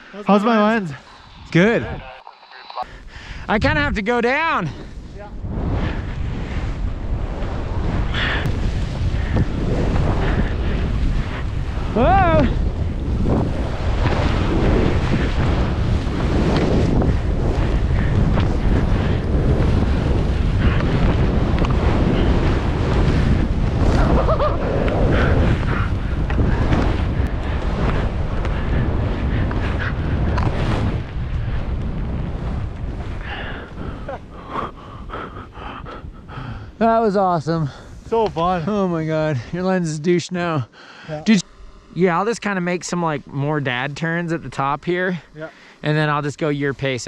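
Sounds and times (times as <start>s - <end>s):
wind rushing on microphone: 0.0s - 2.2s, 2.8s - 47.0s
skis hissing through powder snow: 5.0s - 27.1s.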